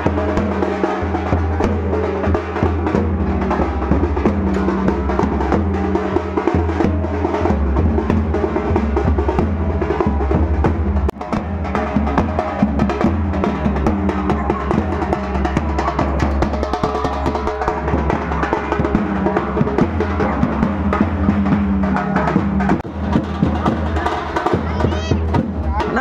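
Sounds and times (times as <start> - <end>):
bass drum beats: 0.0 - 26.0
procession drumming: 0.0 - 26.0.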